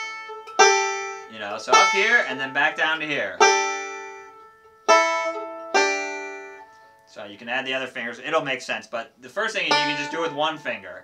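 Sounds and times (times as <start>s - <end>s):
banjo notes plucked: 0.0s - 7.0s, 9.5s - 11.0s.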